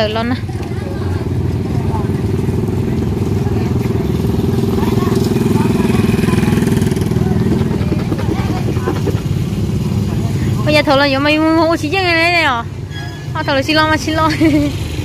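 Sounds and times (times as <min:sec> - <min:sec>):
small motorcycle engine running: 0:00.4 - 0:11.3
scooter riding past: 0:00.5 - 0:10.7.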